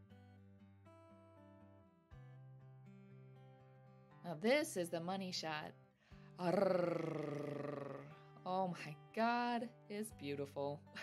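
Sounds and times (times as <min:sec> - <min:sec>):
background music: 0:00.0 - 0:11.0
woman's drawn-out ohh: 0:06.4 - 0:08.2.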